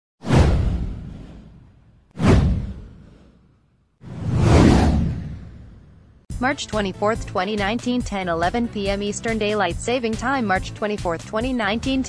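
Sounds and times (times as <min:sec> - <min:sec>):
whoosh with deep low boom: 0:00.2 - 0:06.3.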